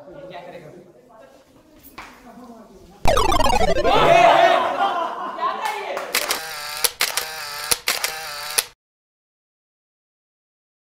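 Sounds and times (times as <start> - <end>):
held electronic tone: 3.1 - 4.3.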